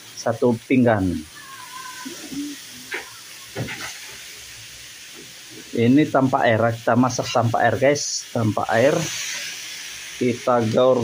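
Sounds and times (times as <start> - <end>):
food sizzling in a wok: 0.0 - 11.0.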